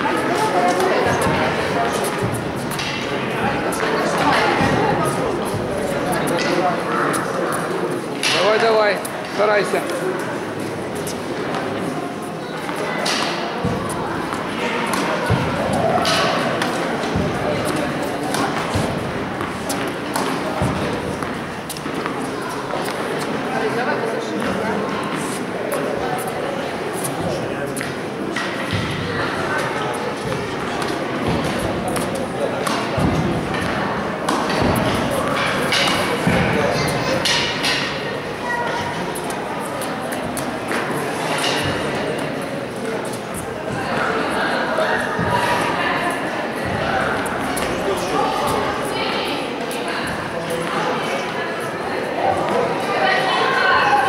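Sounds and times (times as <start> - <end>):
murmur of voices: 0.0 - 54.0
balls bouncing on court: 12.6 - 23.2, 28.6 - 29.1, 30.2 - 37.9
tennis balls hit with rackets: 12.6 - 23.4, 27.7 - 38.0.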